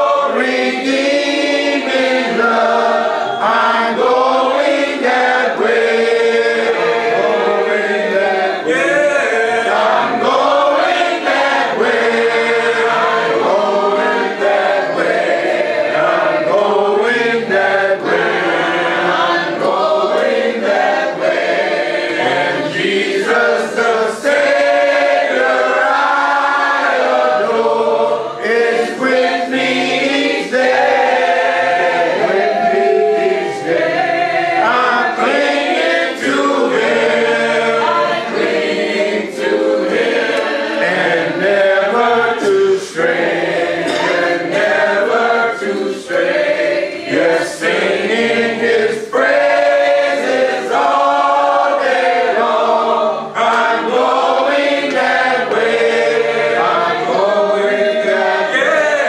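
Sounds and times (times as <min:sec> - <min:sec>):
congregation singing a hymn: 0:00.0 - 0:59.0.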